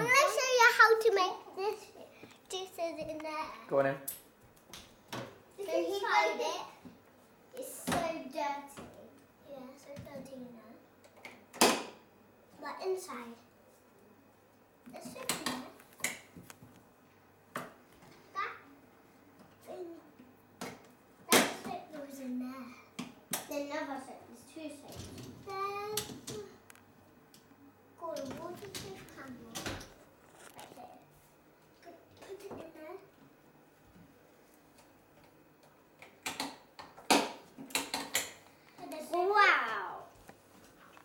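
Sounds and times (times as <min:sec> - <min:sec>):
young child's wordless voice: 0:00.0 - 0:03.7, 0:07.5 - 0:10.8, 0:19.6 - 0:20.2, 0:21.6 - 0:22.9, 0:23.5 - 0:26.6, 0:28.0 - 0:29.8, 0:31.8 - 0:33.2, 0:38.8 - 0:40.2.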